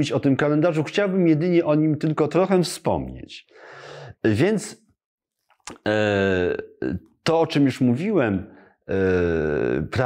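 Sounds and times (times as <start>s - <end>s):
mouth click: 5.5s - 5.9s.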